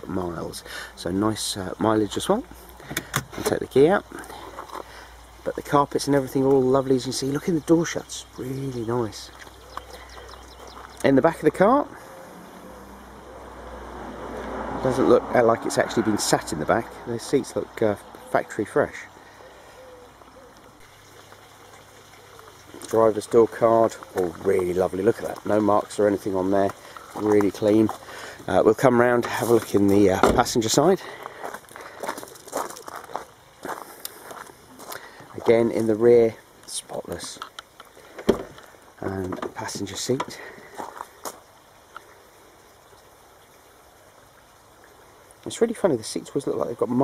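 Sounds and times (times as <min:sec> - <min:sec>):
man speaking: 0:00.0 - 0:02.5, 0:03.4 - 0:04.5, 0:05.4 - 0:09.4, 0:11.0 - 0:12.1, 0:14.8 - 0:19.2, 0:22.8 - 0:31.2, 0:35.3 - 0:37.5, 0:39.0 - 0:40.6
faint background hiss: 0:00.0 - 0:47.0
faint background noise: 0:00.0 - 0:47.0.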